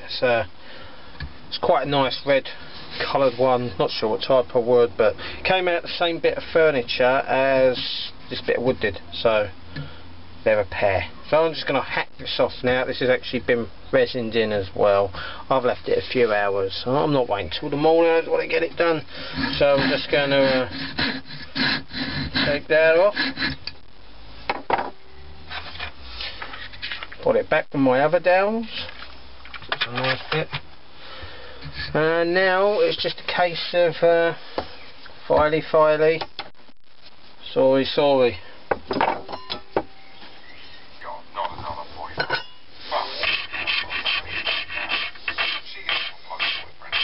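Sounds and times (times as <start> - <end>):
file rasping on wood: 19.3 - 23.6, 43.2 - 47.0
hand saw cutting wood: 19.3 - 23.6, 43.2 - 47.0
light scraping of wood: 25.5 - 27.2.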